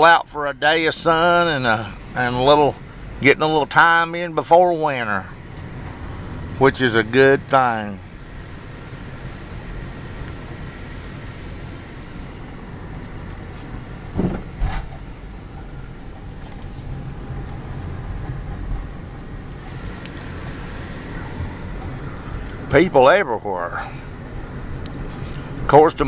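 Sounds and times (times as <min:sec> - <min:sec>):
car engine and road hum: 0:00.0 - 0:26.0.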